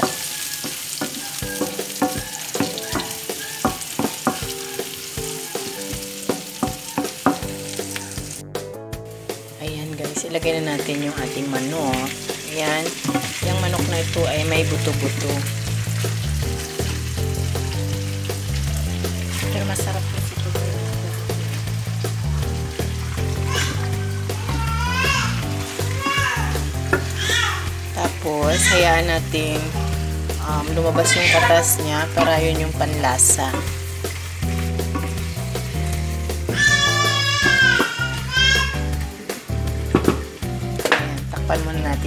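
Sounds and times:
spatula scraping pan: 0.0 - 8.1, 12.0 - 14.0, 30.7 - 35.8
chicken sizzling in a pan: 0.0 - 8.4, 9.0 - 42.0
background music with bass: 1.5 - 42.0.

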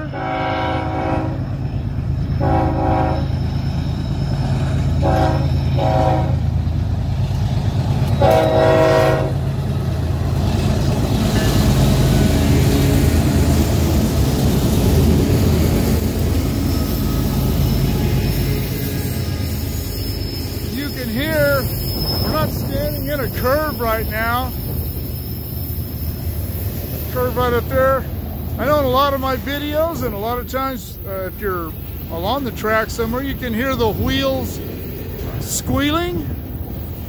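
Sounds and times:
diesel locomotive engines: 0.0 - 37.0
freight cars rumbling over rails: 0.0 - 37.0.

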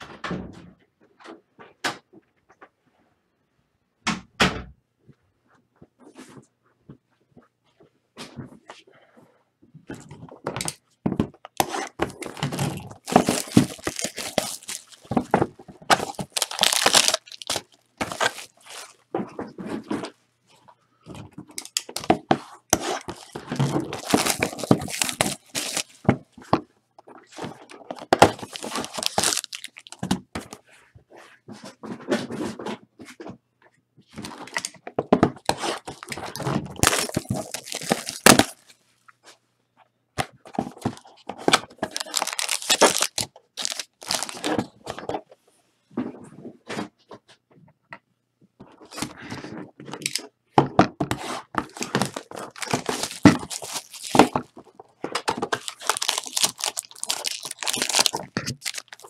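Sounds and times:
clicks and knocks of packs: 10.0 - 20.1, 21.1 - 26.3, 27.4 - 30.6, 34.1 - 38.7, 40.2 - 45.1, 51.5 - 59.0
foil wrappers crinkling and tearing: 11.6 - 19.0, 21.6 - 22.2, 22.8 - 26.1, 27.8 - 30.2, 34.2 - 34.7, 35.5 - 38.7, 41.7 - 44.6, 51.6 - 54.5, 55.4 - 59.0.

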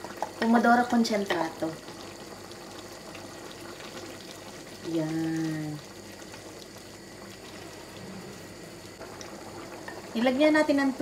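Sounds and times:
sauce bubbling in a pan: 0.0 - 11.0.

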